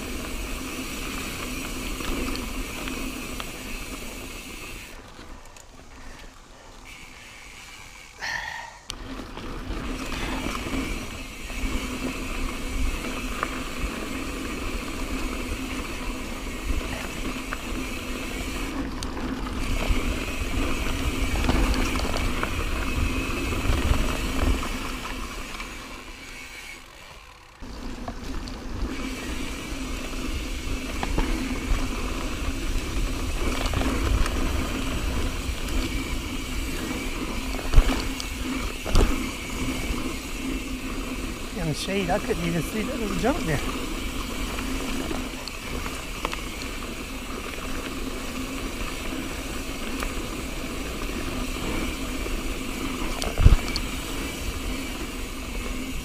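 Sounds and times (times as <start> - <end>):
bike rattling over bumps: 0.0 - 56.0
bike tyres rolling on dirt: 0.0 - 56.0.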